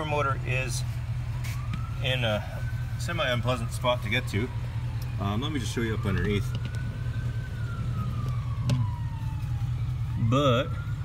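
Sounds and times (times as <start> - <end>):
distant siren wailing: 0.0 - 11.0.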